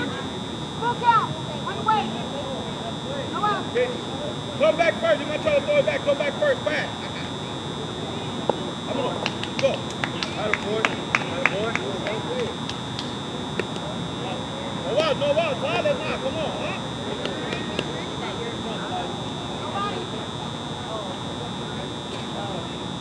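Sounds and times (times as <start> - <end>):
distant shouts and chatter: 0.0 - 23.0
steady high-pitched whine: 0.0 - 23.0
sharp clicks: 9.2 - 13.9.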